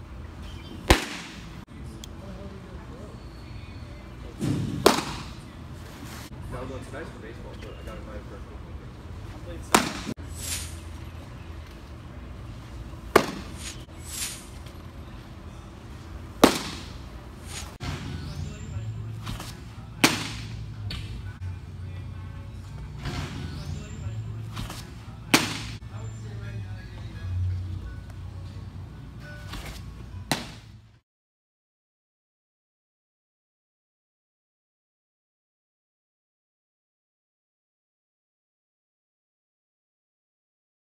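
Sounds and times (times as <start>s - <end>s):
baseball smacking into leather mitt: 0.8s - 1.6s, 4.4s - 5.4s, 9.7s - 10.8s, 13.1s - 14.7s, 16.4s - 18.1s, 19.2s - 21.2s, 24.4s - 25.8s, 29.4s - 30.7s.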